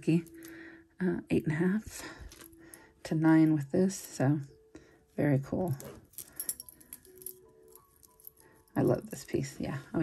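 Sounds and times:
faint sustained musical tones: 0.0s - 10.0s.

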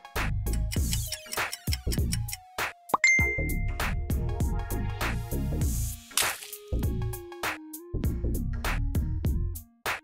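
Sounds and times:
high ding chime: 3.0s - 3.8s.

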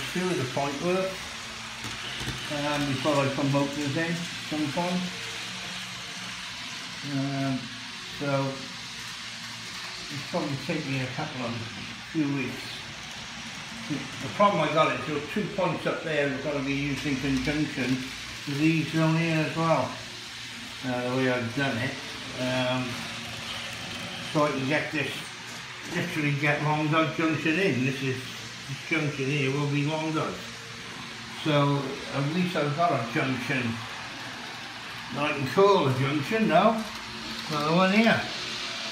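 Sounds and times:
model trains running on track: 0.0s - 38.9s.

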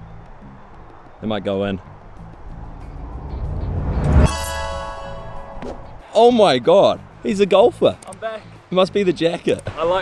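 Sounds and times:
rising music swell: 2.2s - 6.9s
bright sustained chord: 4.0s - 6.5s.

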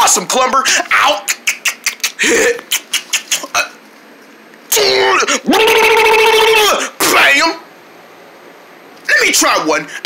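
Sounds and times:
high-pitched cry: 4.7s - 6.8s.

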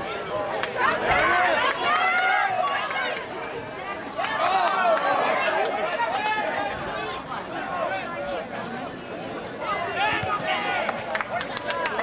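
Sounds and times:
voices shouting and calling out: 0.0s - 12.0s.

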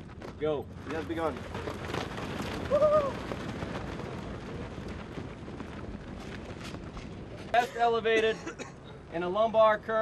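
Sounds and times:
footsteps running on gravel: 0.0s - 7.6s
wind noise on microphone: 0.0s - 7.6s.

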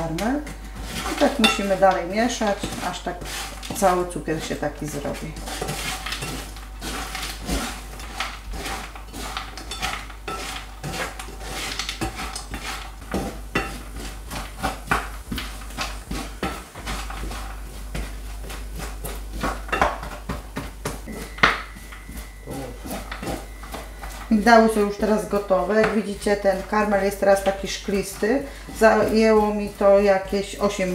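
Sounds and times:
spatula scraping a frying pan: 0.0s - 20.5s, 21.1s - 30.9s.

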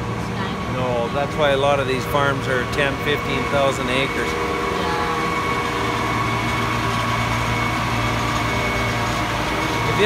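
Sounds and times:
diesel engine droning: 0.0s - 10.0s.

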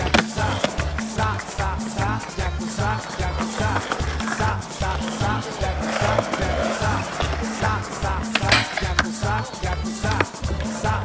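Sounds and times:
latin-style song with singing: 0.0s - 11.0s
skateboard clack: 0.0s - 11.0s
skateboard wheels rolling on concrete: 0.0s - 11.0s.

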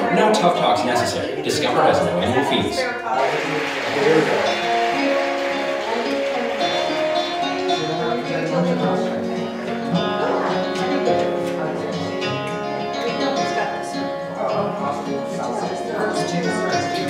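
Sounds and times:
plucked guitar strings: 3.8s - 17.0s.

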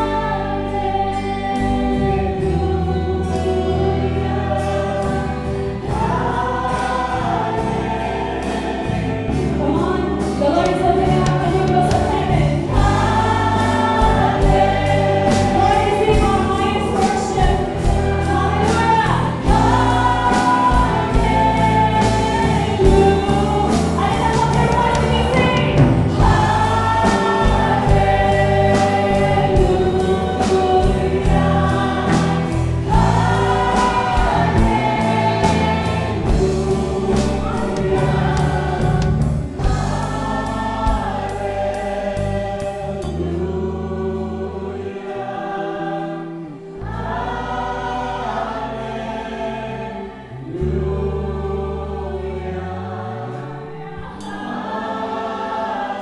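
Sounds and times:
drum kit: 0.0s - 43.4s
bass guitar: 0.0s - 56.0s
guitars: 0.0s - 56.0s
keyboard: 0.0s - 56.0s
singers: 0.0s - 56.0s.

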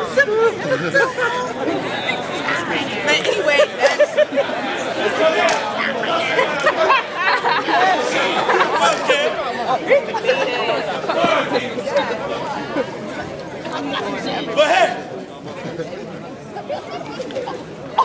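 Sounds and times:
crowd chattering and calling out: 0.0s - 18.0s.

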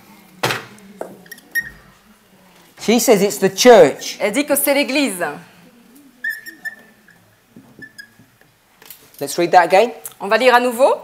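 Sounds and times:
marker squeaking on whiteboard: 1.3s - 1.8s, 6.2s - 8.3s.

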